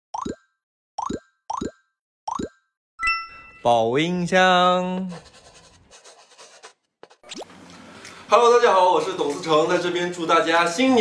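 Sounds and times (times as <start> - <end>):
cartoon pop bloop: 0.1 - 2.8.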